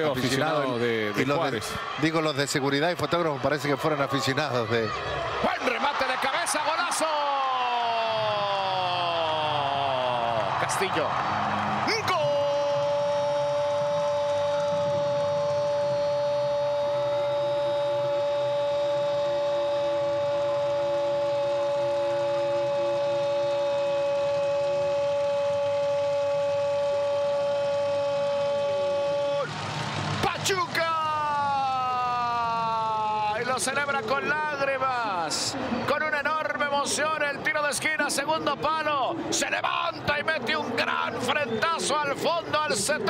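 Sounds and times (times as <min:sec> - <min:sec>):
commentator shouting: 0:30.2 - 0:35.3.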